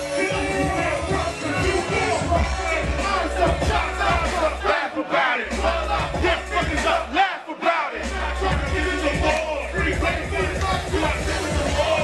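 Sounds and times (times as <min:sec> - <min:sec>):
crowd yelling: 0:00.0 - 0:12.0
hip hop beat: 0:00.0 - 0:12.0
rapper shouting into microphone: 0:00.0 - 0:12.0.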